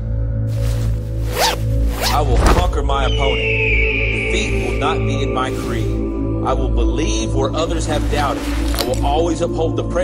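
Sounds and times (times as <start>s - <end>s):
bag zipper being pulled: 0.5s - 2.2s, 7.8s - 9.1s.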